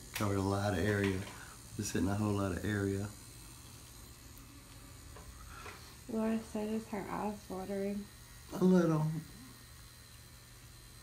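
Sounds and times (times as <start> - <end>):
tattoo machine humming: 0.0 - 11.0.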